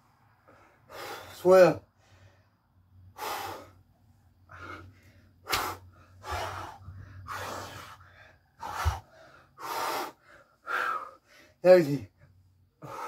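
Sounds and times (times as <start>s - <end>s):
man breathing hard: 0.0s - 13.0s.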